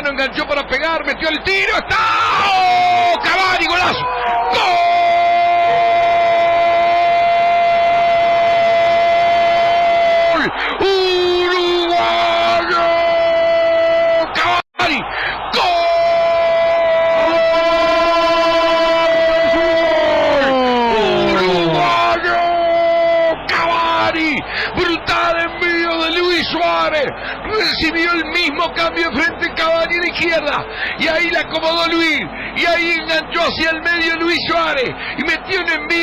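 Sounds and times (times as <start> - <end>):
commentator's sustained goal shout: 1.6 - 36.0.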